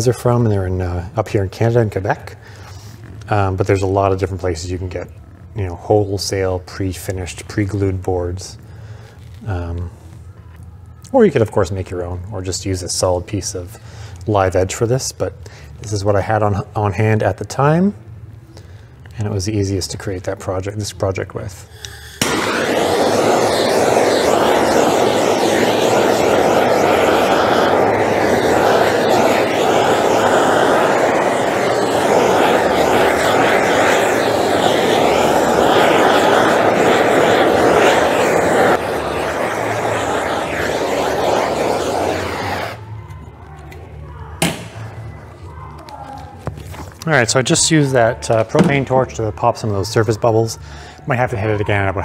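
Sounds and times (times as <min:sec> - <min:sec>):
propane torch hissing: 0:21.5 - 0:43.0.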